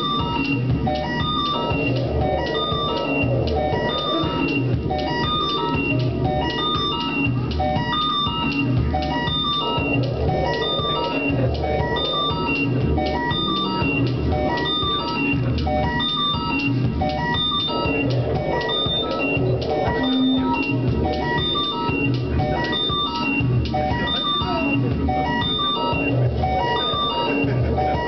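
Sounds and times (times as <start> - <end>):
synthesizer electronic music: 0.0 - 28.0.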